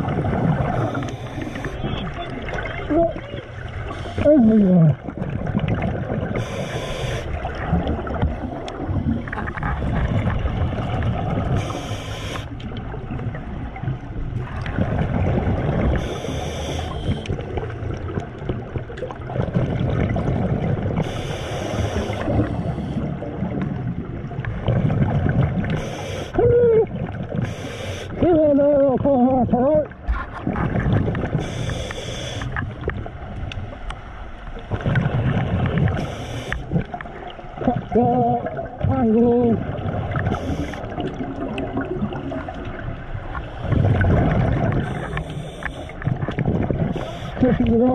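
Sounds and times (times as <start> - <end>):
gurgle of exhaled bubbles: 0.0 - 33.4, 34.6 - 47.9
scuba regulator inhalation hiss: 0.7 - 1.8, 3.9 - 4.2, 6.4 - 7.4, 11.6 - 12.6, 16.0 - 17.3, 21.0 - 23.1, 25.8 - 26.4, 27.4 - 28.2, 31.4 - 32.6, 36.0 - 36.7, 40.3 - 41.0, 44.8 - 46.0, 46.9 - 47.4.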